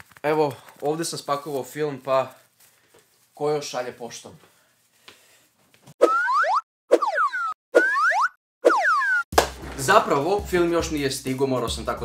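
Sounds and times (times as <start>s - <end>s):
cartoon boing sound effect: 6.0s - 9.2s.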